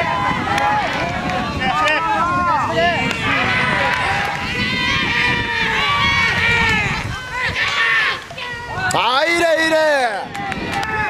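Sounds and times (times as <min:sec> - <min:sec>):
children shouting and calling: 0:00.0 - 0:11.0.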